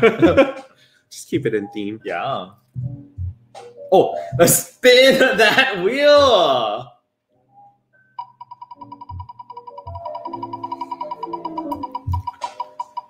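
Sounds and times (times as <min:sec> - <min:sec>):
drum beats: 0:00.0 - 0:00.8, 0:02.8 - 0:04.6, 0:06.1 - 0:06.6, 0:08.8 - 0:13.0
light background music: 0:00.0 - 0:13.0
prize wheel ticking: 0:08.2 - 0:13.0.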